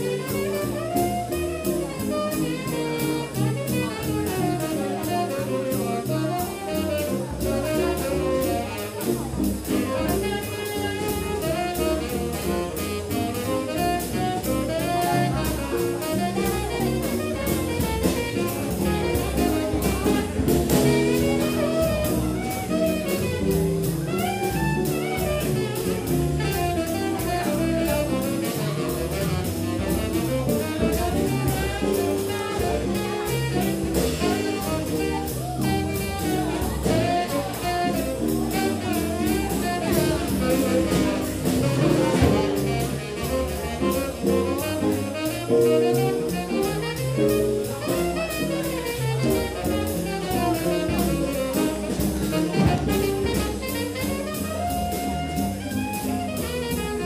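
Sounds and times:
drum kit cymbal beat: 0:00.0 - 0:57.0
tenor saxophone: 0:00.0 - 0:57.0
upright bass: 0:00.0 - 0:57.0
guitar: 0:20.4 - 0:24.1.

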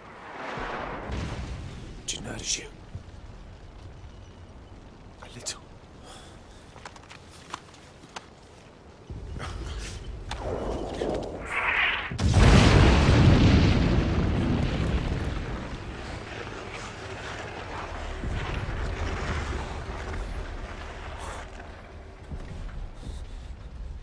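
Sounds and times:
low rumble: 0:00.0 - 0:06.7, 0:09.0 - 0:24.0
artillery shell explosion: 0:10.4 - 0:20.3.

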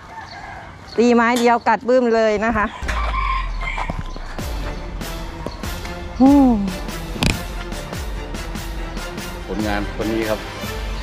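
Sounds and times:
rooster crowing: 0:02.6 - 0:04.1.

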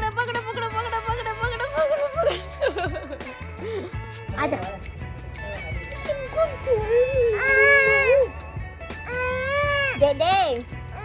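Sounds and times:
high-pitched voice wailing: 0:06.4 - 0:08.3.

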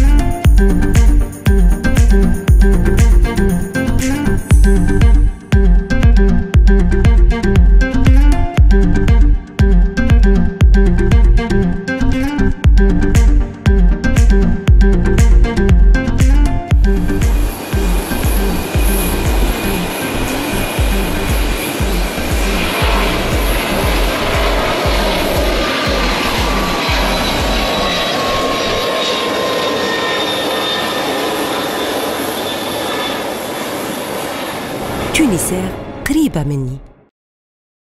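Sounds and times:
low music beat: 0:00.0 - 0:11.5, 0:12.6 - 0:20.0, 0:20.8 - 0:27.7
jet airliner taking off: 0:17.4 - 0:35.1.

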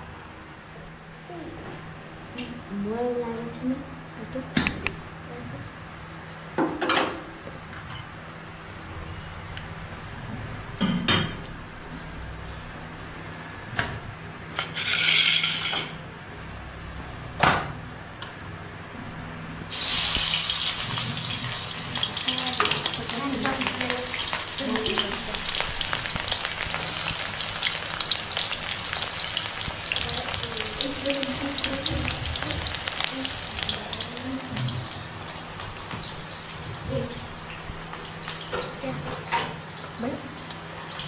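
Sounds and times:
oil sizzling in a wok: 0:19.7 - 0:41.0.

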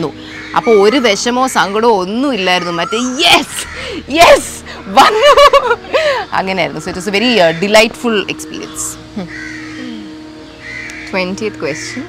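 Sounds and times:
crow cawing: 0:00.2 - 0:04.1, 0:06.0 - 0:12.0.

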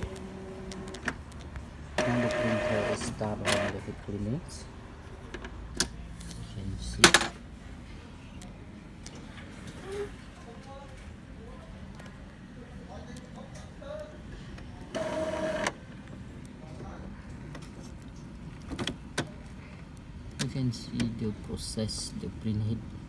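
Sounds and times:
printer humming: 0:00.0 - 0:05.3, 0:14.8 - 0:16.2
printer clicks: 0:02.0 - 0:03.8.

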